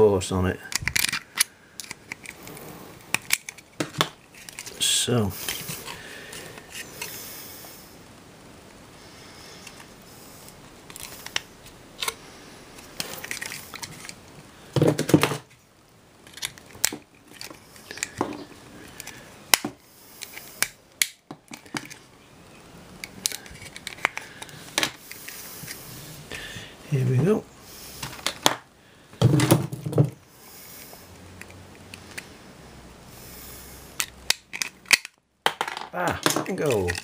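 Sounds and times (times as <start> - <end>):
plastic casing clicks and cracks: 0.7 - 2.4, 16.2 - 19.8, 20.6 - 22.0, 23.0 - 25.0, 34.0 - 37.0.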